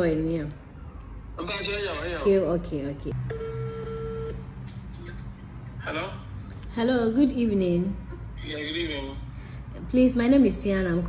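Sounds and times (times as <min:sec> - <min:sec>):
telephone ringback tone: 0:03.3 - 0:04.4.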